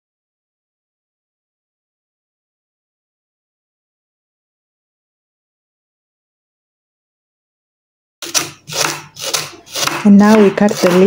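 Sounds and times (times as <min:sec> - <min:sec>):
knife slicing onto wooden board: 0:08.2 - 0:11.0.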